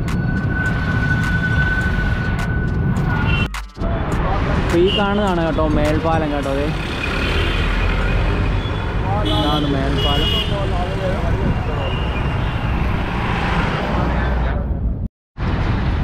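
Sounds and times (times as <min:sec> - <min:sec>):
road traffic engines rumbling: 0:00.0 - 0:16.0.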